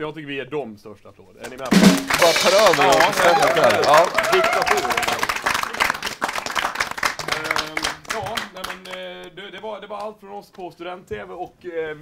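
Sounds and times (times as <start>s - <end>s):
audience applauding: 1.5s - 9.0s.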